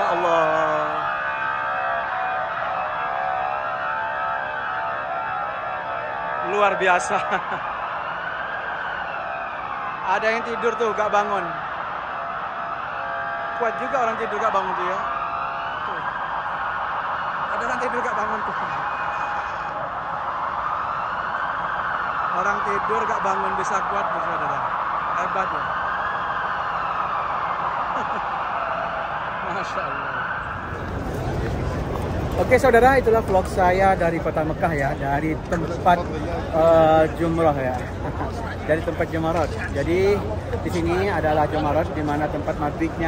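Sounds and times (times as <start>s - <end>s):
police siren wailing: 0.0s - 43.0s
steady background noise: 0.0s - 43.0s.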